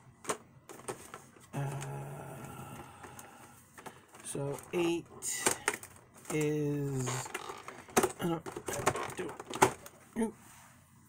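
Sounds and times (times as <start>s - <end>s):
cardboard rustling and scraping: 0.7s - 1.5s, 3.7s - 10.7s
person saying uh: 1.5s - 3.1s, 6.3s - 7.4s, 10.2s - 10.4s.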